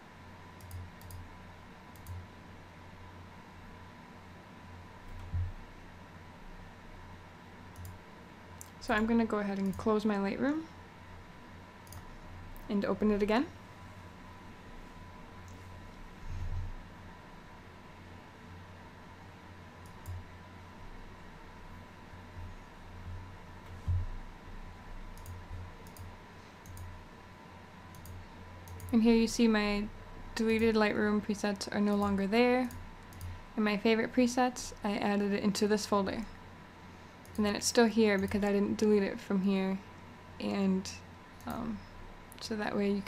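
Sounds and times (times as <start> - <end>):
low hum and hiss: 0.0 - 43.0
computer mouse clicks: 0.6 - 1.2, 1.9 - 2.2, 7.7 - 8.0, 8.6 - 9.9, 11.8 - 12.7, 19.8 - 20.2, 25.1 - 26.9, 27.9 - 29.0, 31.6 - 33.4.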